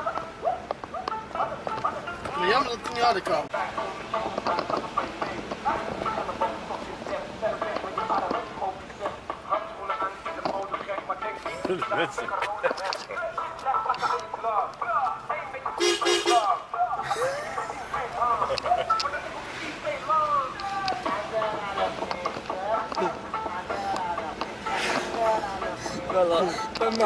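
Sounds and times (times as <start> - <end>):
people talking: 2.3 - 3.7, 17.0 - 27.0.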